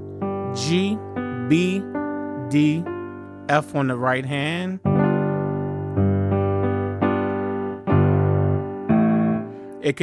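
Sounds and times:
piano chord: 0.0s - 10.0s.

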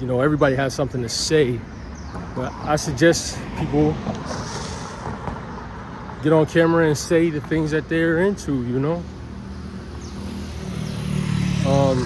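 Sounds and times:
steady traffic haze: 0.0s - 12.0s
passing vehicle engine hum: 1.6s - 12.0s.

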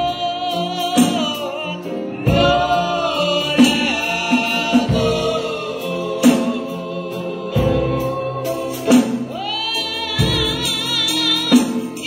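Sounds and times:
group singing gospel song: 0.0s - 12.0s
instrumental accompaniment: 0.0s - 12.0s.

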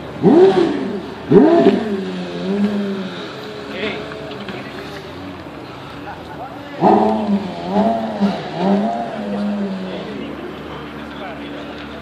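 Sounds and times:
steady background noise: 0.0s - 12.0s.

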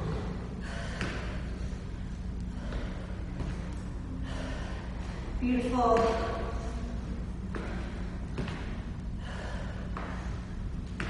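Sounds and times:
woman breathing hard: 0.0s - 5.4s, 6.8s - 11.0s
steady low hum: 0.0s - 11.0s.

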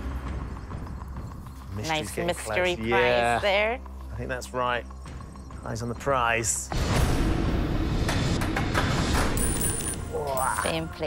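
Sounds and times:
game-show tension music: 0.0s - 11.0s.

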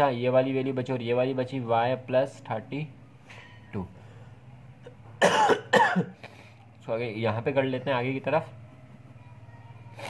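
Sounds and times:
man coughing: 5.2s - 6.2s.

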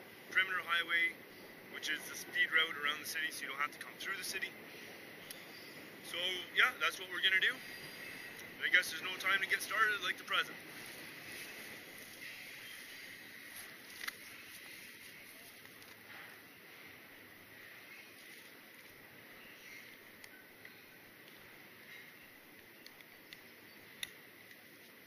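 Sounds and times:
rustling of dry grass: 6.9s - 22.8s
backpack being handled: 10.7s - 16.0s.

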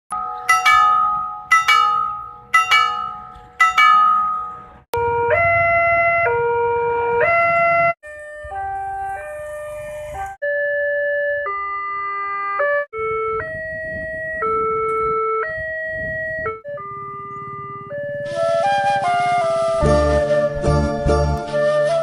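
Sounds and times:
crossing bell striking: 0.1s - 4.8s
electronic two-tone crossing alarm: 0.1s - 6.6s, 7.2s - 18.5s.

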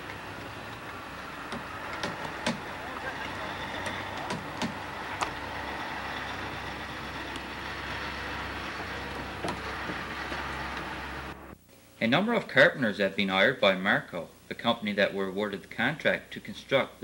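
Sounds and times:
heavy truck engine running: 0.0s - 11.6s
sharp knocks: 1.4s - 2.8s, 3.7s - 5.4s.

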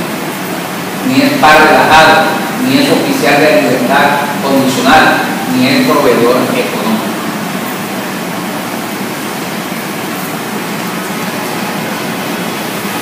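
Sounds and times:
room tone hiss: 0.0s - 13.0s.

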